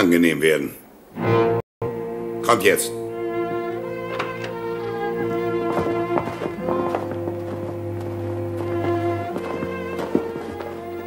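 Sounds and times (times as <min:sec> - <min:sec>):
orchestral strings holding chords: 0:01.2 - 0:11.0
footsteps or knocks: 0:04.0 - 0:11.0.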